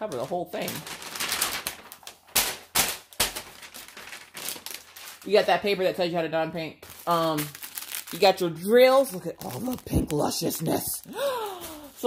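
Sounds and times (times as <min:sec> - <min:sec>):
parchment paper rustling: 0:00.0 - 0:12.0.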